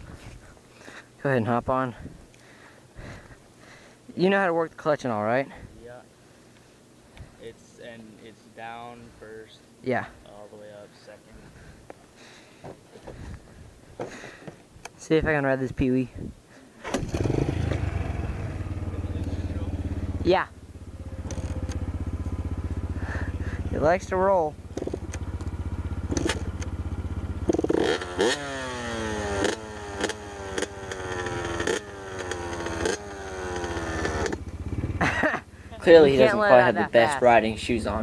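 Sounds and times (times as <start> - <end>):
dirt bike engine idling: 17.0 - 38.0.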